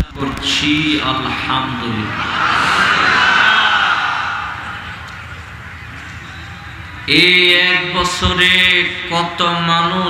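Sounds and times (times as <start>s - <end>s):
low hum of gathering: 0.0s - 10.0s
crowd of men answering together: 2.1s - 5.1s.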